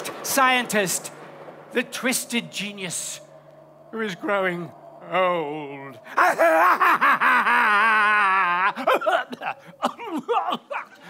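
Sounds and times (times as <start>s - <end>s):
man cackling: 6.1s - 11.0s.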